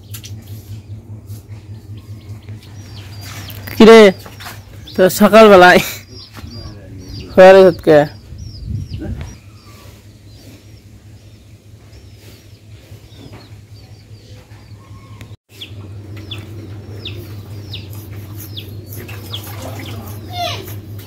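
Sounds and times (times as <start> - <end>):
small birds chirping: 0.0 - 21.0
steady low hum: 0.0 - 21.0.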